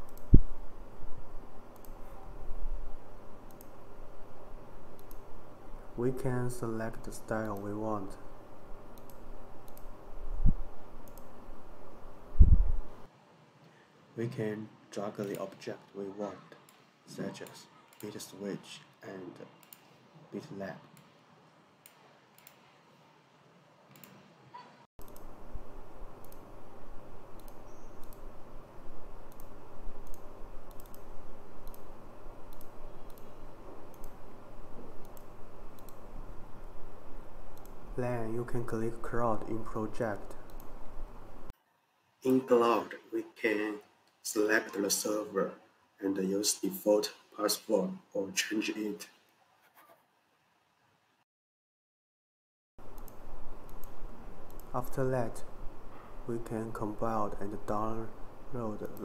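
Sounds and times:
faint steady hum: 0.0s - 49.4s, 52.8s - 59.0s
computer mouse clicking: 1.7s - 2.1s, 3.5s - 3.8s, 4.9s - 5.3s, 6.9s - 7.8s, 8.9s - 10.0s, 11.0s - 11.4s, 15.2s - 15.6s, 19.6s - 20.0s, 21.8s - 22.7s, 23.9s - 24.2s, 25.0s - 25.3s, 26.2s - 26.5s, 27.3s - 28.3s, 29.3s - 31.9s, 32.5s - 34.2s, 35.0s - 36.1s, 37.5s - 37.8s, 40.2s - 40.8s, 52.9s - 54.9s.

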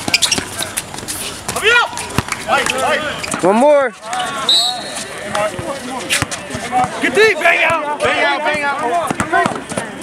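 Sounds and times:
players moving on hard court: 0.0s - 10.0s
basketball bouncing: 1.5s - 2.8s.

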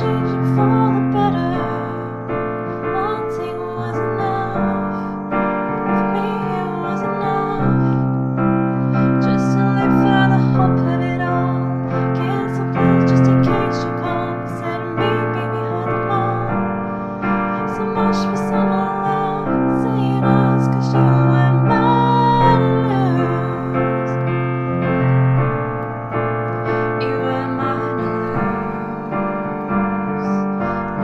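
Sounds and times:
piano playing chords: 0.0s - 31.0s.

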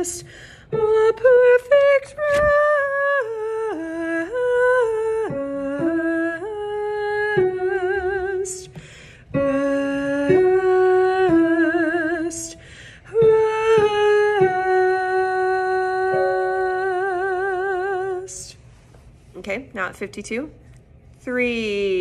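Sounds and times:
woman singing wordlessly: 0.0s - 18.6s.

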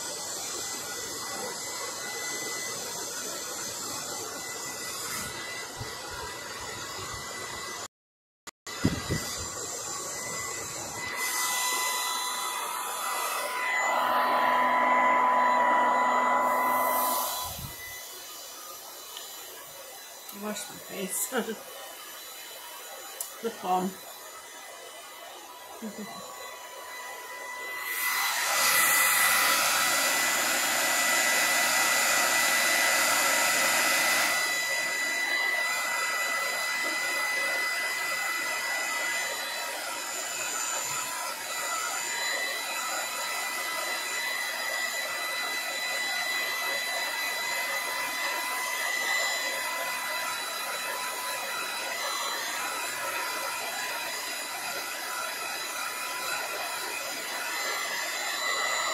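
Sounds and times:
hair dryer running: 0.0s - 7.9s, 8.7s - 58.9s.

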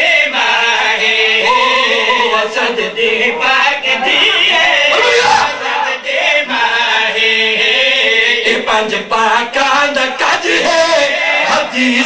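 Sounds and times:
man chanting melodically: 1.4s - 6.0s.

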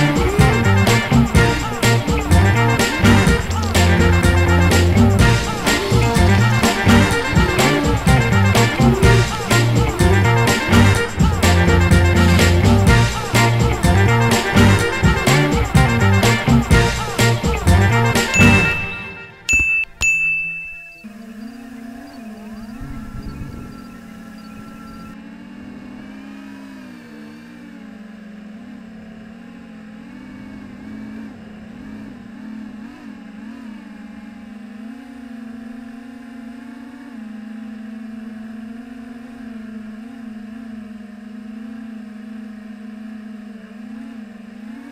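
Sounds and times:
drone motors whining: 0.0s - 19.5s, 20.8s - 44.9s
low thumps: 0.0s - 20.9s.

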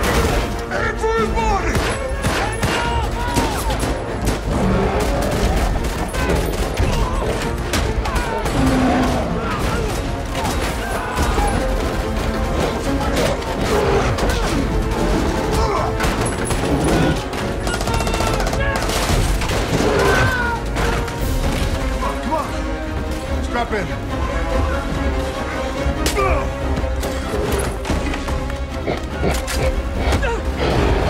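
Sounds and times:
film score: 0.0s - 31.0s.

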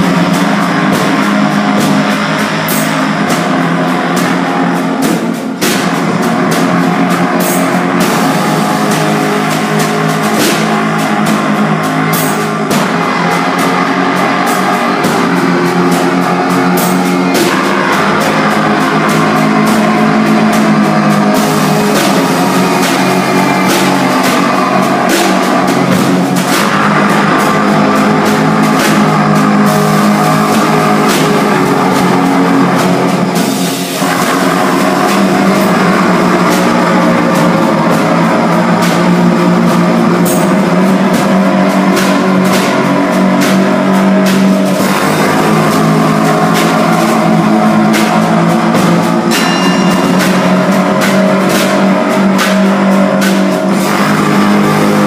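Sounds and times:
drum kit with cymbal hits: 0.0s - 55.0s
trumpet: 0.0s - 55.0s.

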